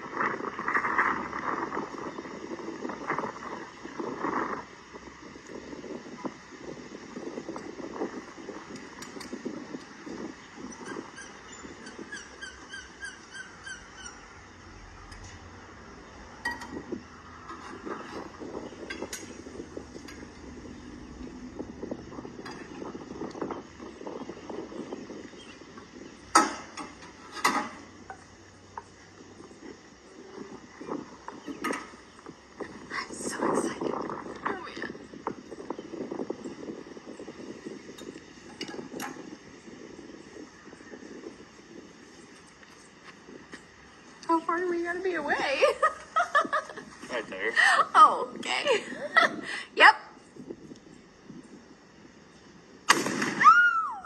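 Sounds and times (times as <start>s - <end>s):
bird chirping quickly: 10.4s - 14.6s
sharp knocks on metal: 26.4s - 27.8s.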